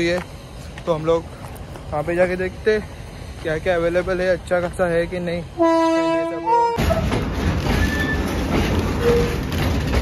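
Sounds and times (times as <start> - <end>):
train wheels running on rails: 0.0 - 10.0.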